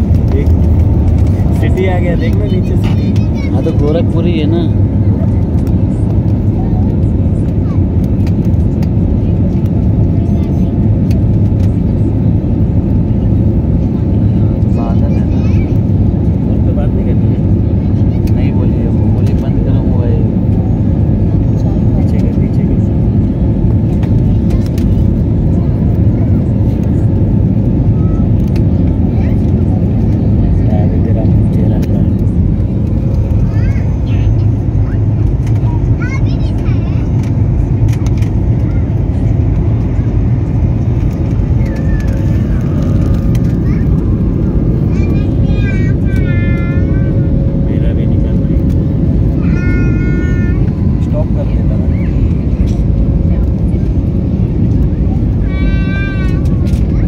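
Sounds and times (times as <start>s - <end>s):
jet cabin engine rumble: 0.0s - 57.0s.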